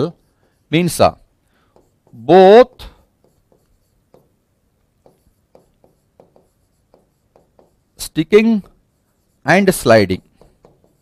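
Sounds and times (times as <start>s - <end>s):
stylus tapping and scratching: 0.0s - 11.0s.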